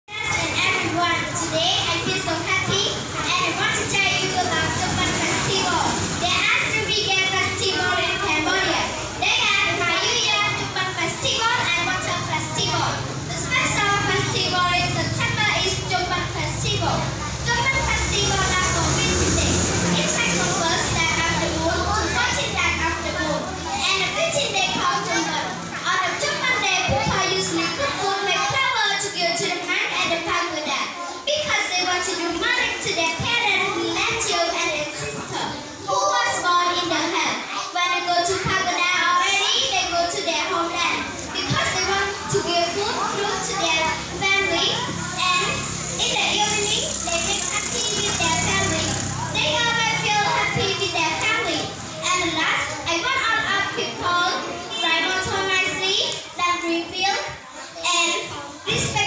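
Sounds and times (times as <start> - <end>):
girl speaking into a microphone: 0.1 - 59.0.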